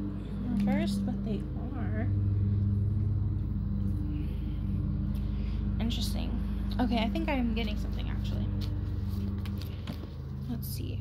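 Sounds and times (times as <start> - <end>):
held low tones: 0.0 - 11.0
steady low hum: 0.0 - 11.0.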